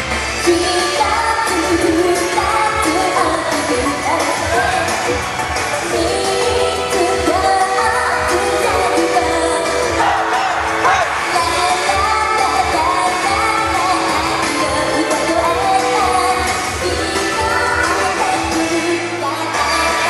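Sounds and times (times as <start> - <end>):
pop backing music with beat: 0.0 - 20.0
woman singing: 0.4 - 5.2, 5.8 - 10.0, 11.3 - 20.0.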